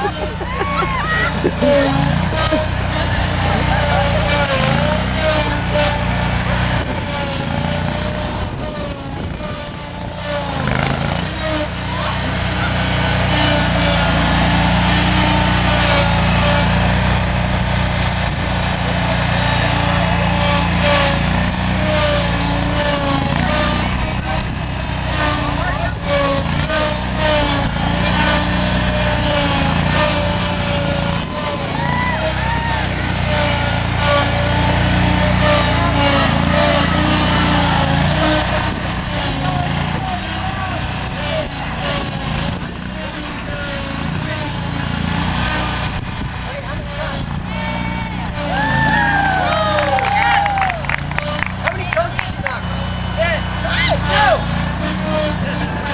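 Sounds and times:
lawnmower engine running: 0.0s - 55.9s
people chattering: 11.4s - 16.5s.

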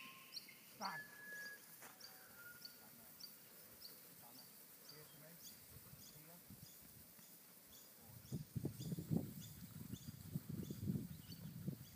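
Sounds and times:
high-pitched chirp: 0.0s - 3.3s.

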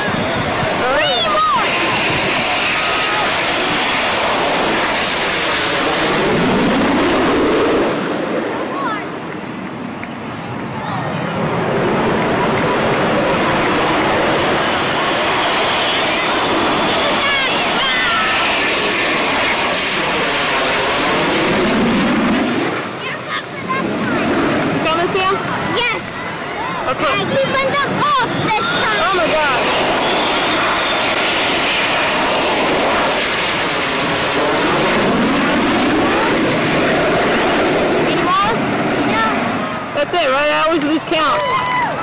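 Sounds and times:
jet roar with high whine: 0.0s - 42.0s.

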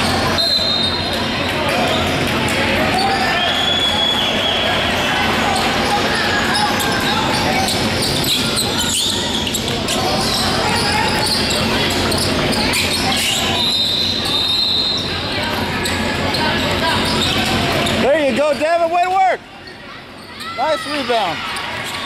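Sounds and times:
sneakers squeaking: 0.0s - 22.0s.

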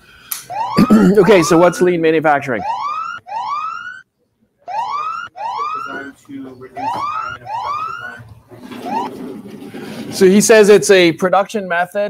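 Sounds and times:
electronic timer alarm whooping: 0.5s - 1.9s, 2.6s - 4.0s, 4.7s - 6.1s, 6.8s - 8.2s.

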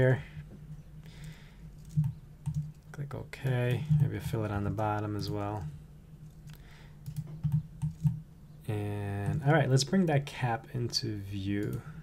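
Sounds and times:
faint low hum: 0.0s - 12.0s
computer keyboard keystrokes: 1.8s - 2.8s, 6.5s - 8.2s.

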